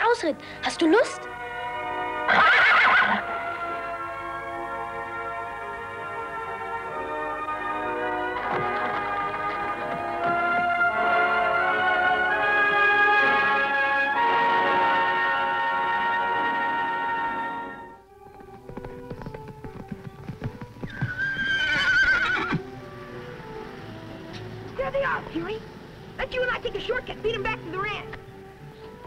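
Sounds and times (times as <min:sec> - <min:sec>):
background score music: 0:00.0 - 0:29.0
horse whinny: 0:02.2 - 0:03.3, 0:20.8 - 0:22.7
horse hooves clopping: 0:02.3 - 0:13.9, 0:18.0 - 0:29.0.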